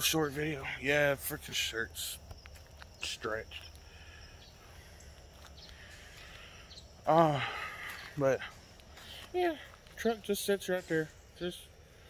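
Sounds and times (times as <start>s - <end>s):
high insect tones: 0.0s - 12.0s.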